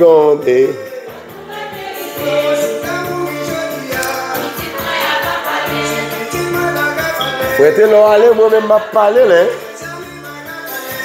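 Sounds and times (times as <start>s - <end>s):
choir singing gospel song: 0.4s - 11.0s.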